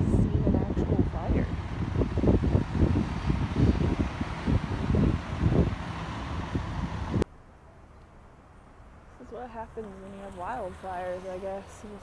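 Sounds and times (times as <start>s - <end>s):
wind buffeting microphone: 0.0s - 7.2s
outdoor street noise: 0.0s - 12.0s.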